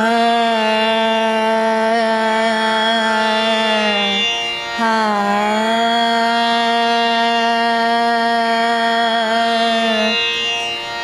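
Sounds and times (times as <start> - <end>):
woman singing slow vowel notes: 0.0 - 4.2.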